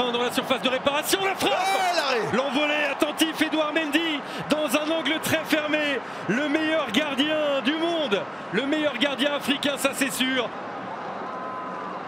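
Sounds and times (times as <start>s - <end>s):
man talking: 0.0s - 10.5s
stadium crowd noise: 0.0s - 12.0s.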